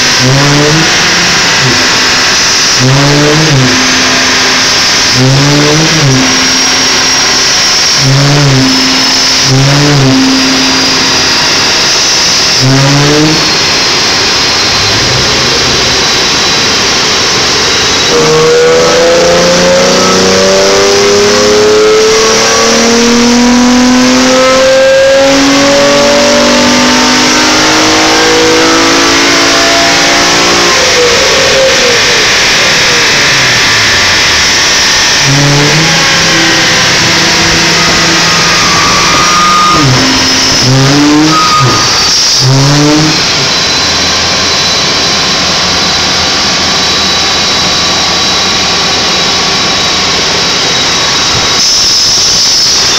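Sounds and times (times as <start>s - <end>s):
car engine revving: 0.0s - 52.9s
engine throttle blips: 0.0s - 52.9s.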